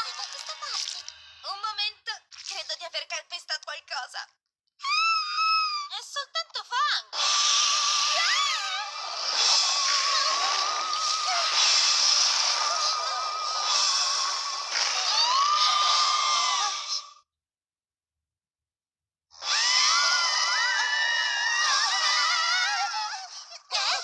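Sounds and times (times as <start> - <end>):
cartoon characters crying out: 4.8 - 5.9, 7.2 - 17.2, 19.4 - 24.0
spooky hissing score: 7.2 - 17.2, 19.4 - 23.9.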